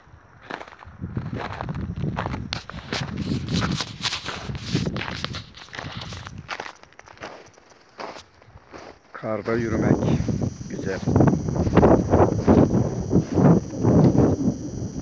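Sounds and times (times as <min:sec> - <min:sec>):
footsteps crunching through snow: 0:00.5 - 0:09.9.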